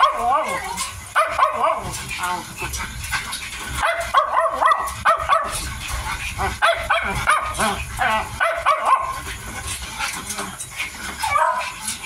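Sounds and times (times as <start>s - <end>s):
puppies yipping: 0.0s - 12.0s.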